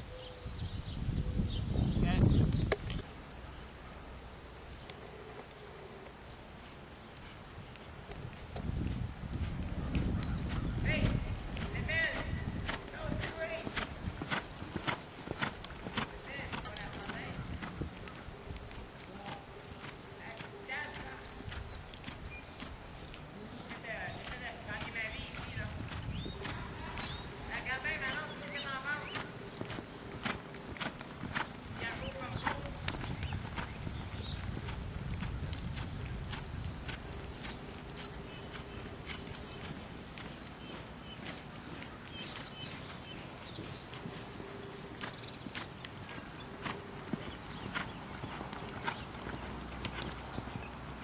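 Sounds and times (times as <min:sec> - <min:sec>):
hoofbeats on soft ground: 0:04.7 - 0:51.0.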